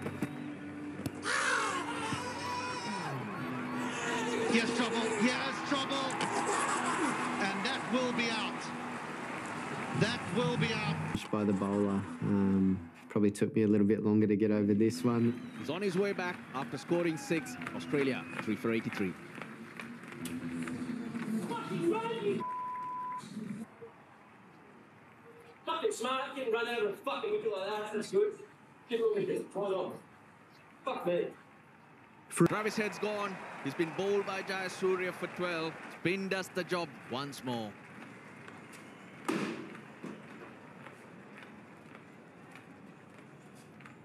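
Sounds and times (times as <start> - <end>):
man talking: 10.0 - 19.2, 32.3 - 37.7
censor bleep: 22.4 - 23.2
cricket bat landing with crash: 39.2 - 40.3.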